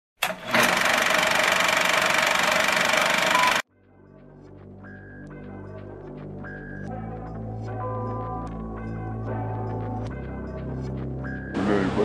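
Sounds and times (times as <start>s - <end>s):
fast mechanical rattle: 0.2s - 3.6s.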